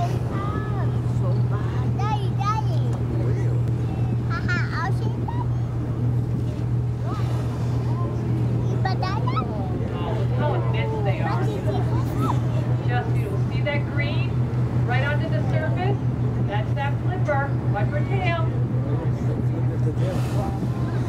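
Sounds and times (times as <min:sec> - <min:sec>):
boat engine humming: 0:00.0 - 0:21.0
people's voices: 0:00.0 - 0:21.0.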